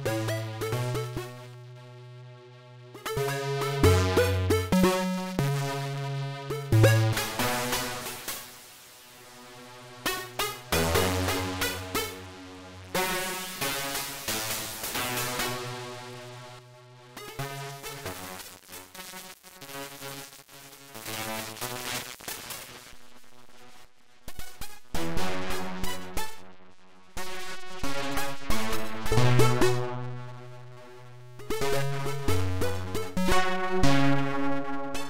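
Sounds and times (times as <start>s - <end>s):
synthesizer playing repeating notes: 3.0s - 7.4s.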